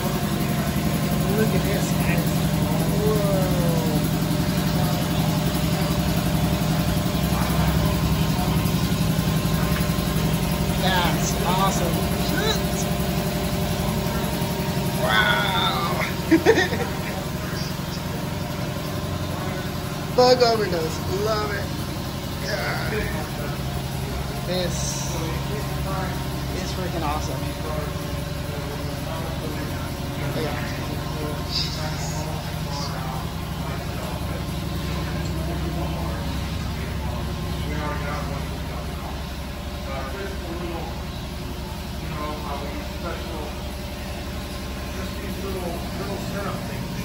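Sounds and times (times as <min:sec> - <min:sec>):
engine idling: 0:00.0 - 0:47.0
indistinct voices: 0:00.0 - 0:47.0
low machine hum: 0:00.0 - 0:47.0.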